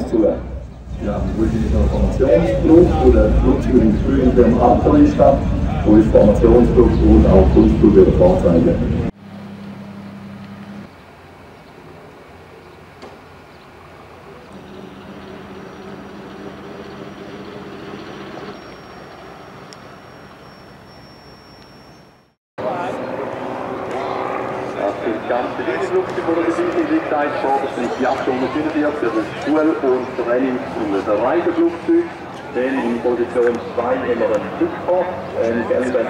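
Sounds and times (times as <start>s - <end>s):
piston engines idling: 0.0s - 20.1s
loud wavering mixed sound: 1.0s - 9.1s.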